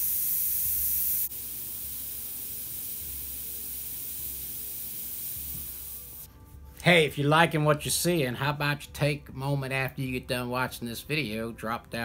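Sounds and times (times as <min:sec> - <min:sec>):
airbrush spraying hiss: 0:00.0 - 0:06.3.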